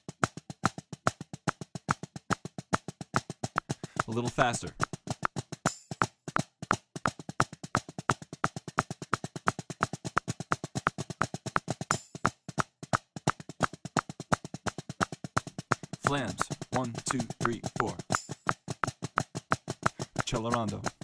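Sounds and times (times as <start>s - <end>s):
drumsticks on a practice pad: 0.0s - 21.0s.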